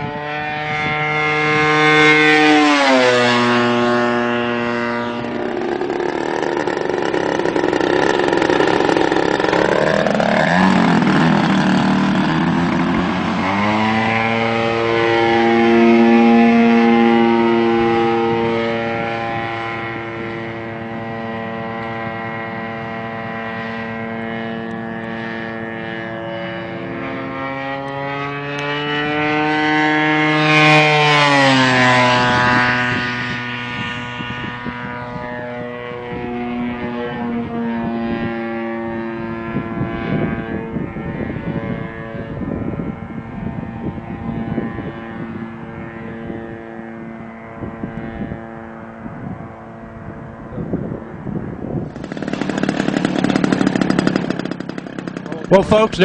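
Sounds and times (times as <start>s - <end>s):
model airplane engine: 0.0s - 56.0s.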